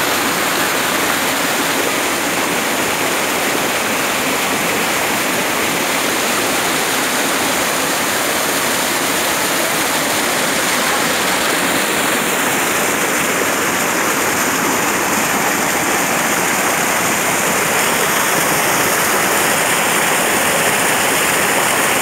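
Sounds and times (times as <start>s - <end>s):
water rushing over rocks: 0.0s - 22.0s.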